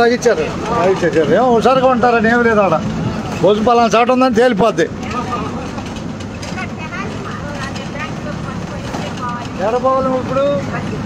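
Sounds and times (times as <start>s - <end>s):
bus engine and road noise: 0.0s - 11.0s
faint passenger chatter: 0.0s - 11.0s.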